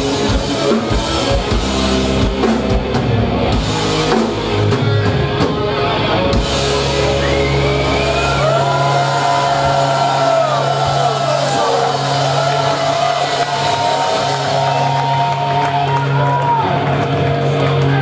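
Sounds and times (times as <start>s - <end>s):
electric guitars sustained notes: 0.0s - 18.0s
heavy metal band playing: 0.0s - 18.0s.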